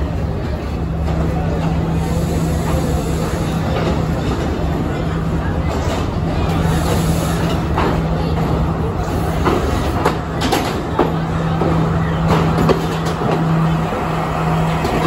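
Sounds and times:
train engine drone: 0.0 - 15.0
train wheels clicking over rail joints: 0.5 - 15.0.

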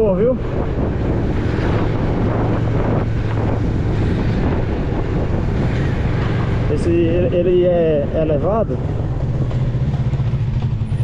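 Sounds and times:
motorcycle engine humming: 0.0 - 11.0
wind rushing over microphone: 0.0 - 11.0.

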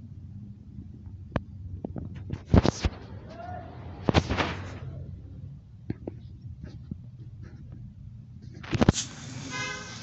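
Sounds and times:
steady outdoor hiss: 0.0 - 10.0
vehicle horn toot: 9.4 - 10.0.

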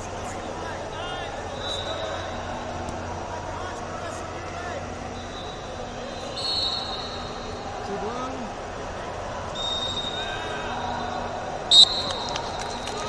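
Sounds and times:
hubbub in echoing hall: 0.0 - 13.0
whistle blowing: 1.6 - 2.4, 5.2 - 7.6, 9.5 - 10.4, 11.0 - 13.0.

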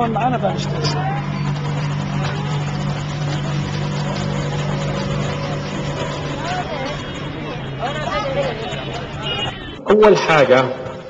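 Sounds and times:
low engine drone: 0.0 - 9.8
street traffic noise: 0.0 - 11.0.

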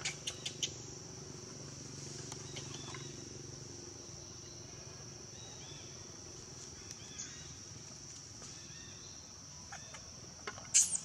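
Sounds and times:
insects trilling: 0.0 - 11.0.

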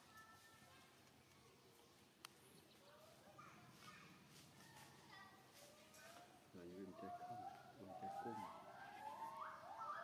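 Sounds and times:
faint outdoor ambience: 0.0 - 10.0.

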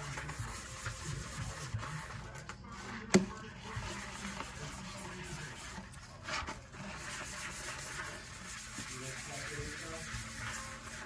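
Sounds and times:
sponge scrubbing metal sink: 0.0 - 11.0.

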